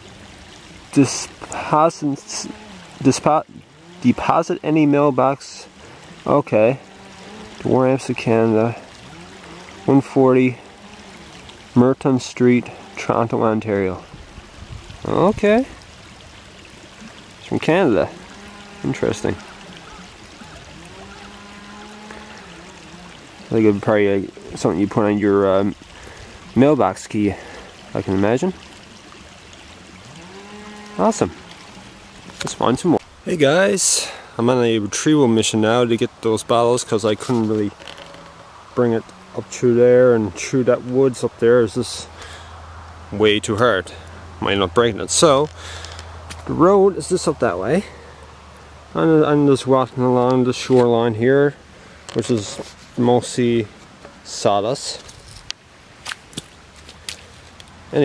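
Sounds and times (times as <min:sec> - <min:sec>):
steady outdoor hiss: 0:00.0 - 0:58.0
man speaking: 0:15.0 - 0:15.7, 0:32.4 - 0:37.7, 0:38.8 - 0:42.2, 0:43.1 - 0:45.5, 0:52.2 - 0:53.7.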